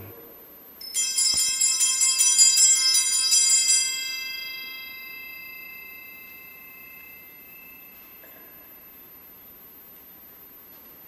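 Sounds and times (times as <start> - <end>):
altar bells jingling: 0.8 - 9.2.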